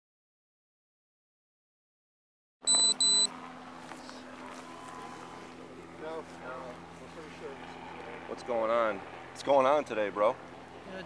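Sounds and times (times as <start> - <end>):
short high electronic beep: 2.7 - 3.3
steady low hum: 2.7 - 11.0
faint voices: 3.9 - 9.4.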